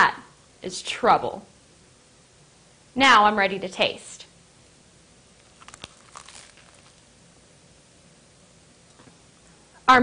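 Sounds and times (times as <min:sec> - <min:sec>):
crackle of biting a burger: 0:05.4 - 0:07.1.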